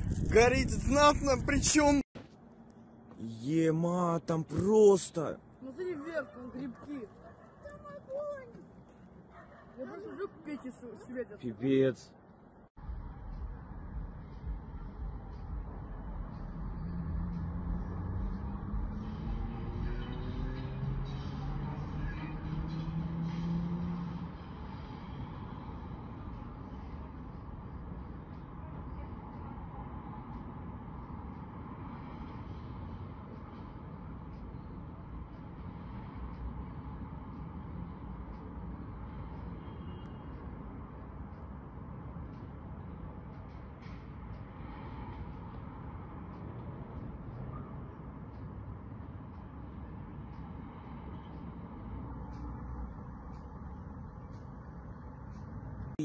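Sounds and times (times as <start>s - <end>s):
motor vehicle engine hum: 12.3s - 56.0s.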